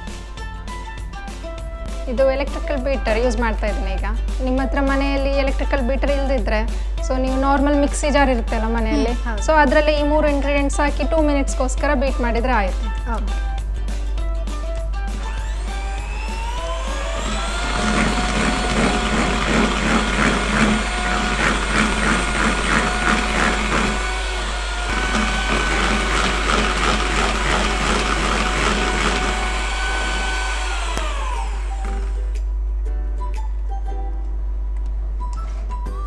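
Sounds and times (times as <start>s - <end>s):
electric hand mixer whine: 15.1s - 32.4s
mixer rattling in bowl: 16.9s - 32.2s.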